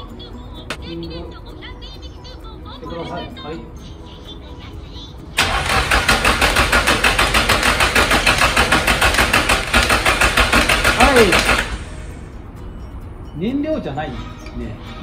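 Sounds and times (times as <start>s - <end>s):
starter motor cranking engine: 5.4s - 12.2s.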